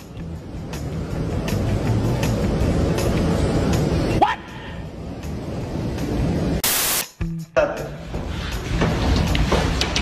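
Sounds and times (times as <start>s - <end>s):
hiss-like static burst: 6.6s - 7.1s.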